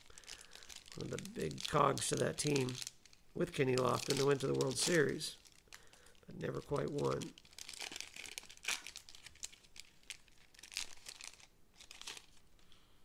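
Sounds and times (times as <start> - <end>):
foil wrapper crinkling: 0.0 - 12.4.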